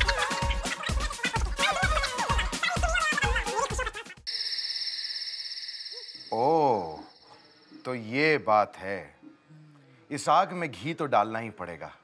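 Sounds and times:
insects chirping in a trill: 4.3 - 8.2.

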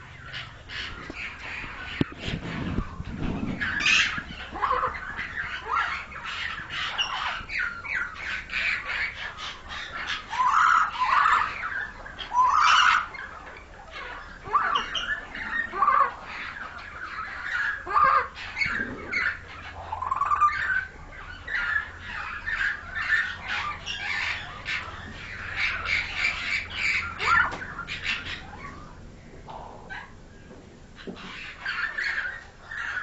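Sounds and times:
mynas squawking and whistling: 0.2 - 29.0.

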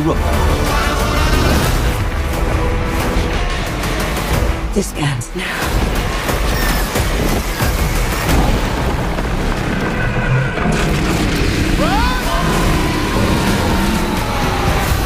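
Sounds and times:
trailer music: 0.0 - 15.0.

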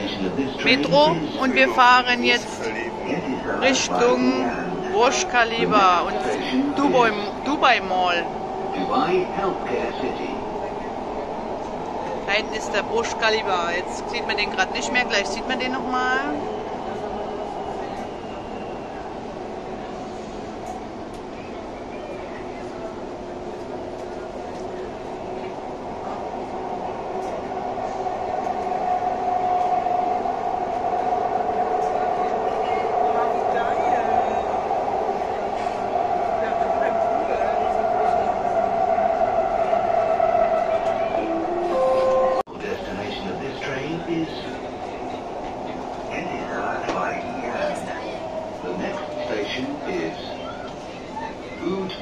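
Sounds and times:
train ride noise with humming tone: 0.0 - 52.0
voices: 0.0 - 52.0.

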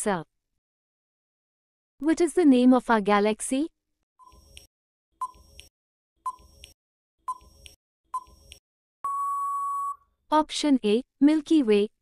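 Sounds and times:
long steady beep: 9.0 - 10.0
short beep: 9.0 - 10.0.

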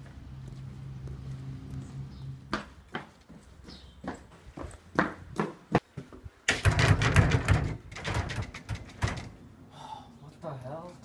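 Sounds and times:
footsteps on concrete: 0.0 - 6.4.

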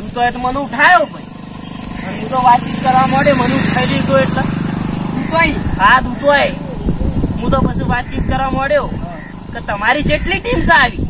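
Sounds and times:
men's voices: 0.0 - 11.0
vehicle engine passing by: 0.0 - 11.0.

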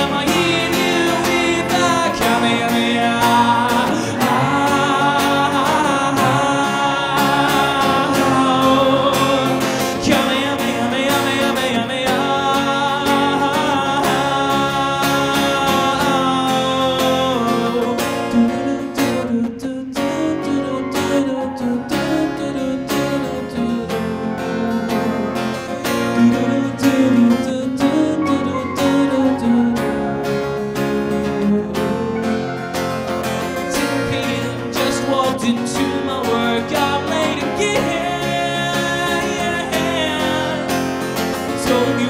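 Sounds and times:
acoustic and electric guitars strumming: 0.0 - 42.0.

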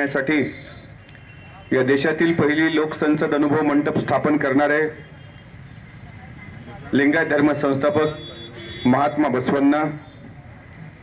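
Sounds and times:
low venue background noise: 0.0 - 11.0.

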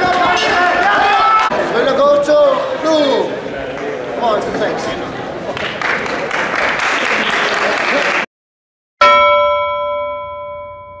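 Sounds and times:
crowd noise: 0.0 - 8.3
bell chime ringing: 9.0 - 11.0.

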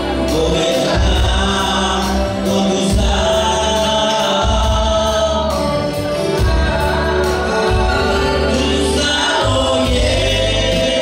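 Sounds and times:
congregation singing: 0.0 - 11.0
live band accompaniment: 0.0 - 11.0.

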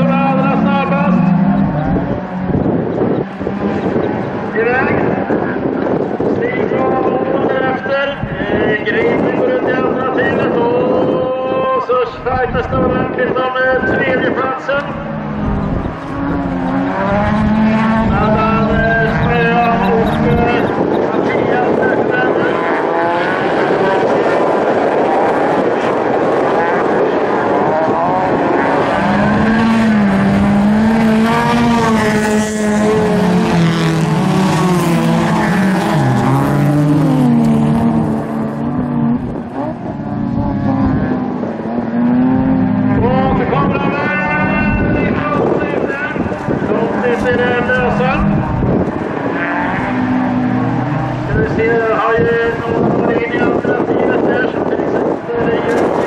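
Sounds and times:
race car engine revving: 0.0 - 6.4, 14.6 - 53.2.

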